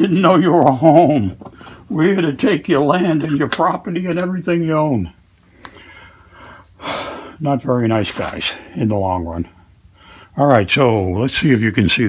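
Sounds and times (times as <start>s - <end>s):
man breathing in sharply: 5.5s - 7.4s, 9.9s - 10.4s.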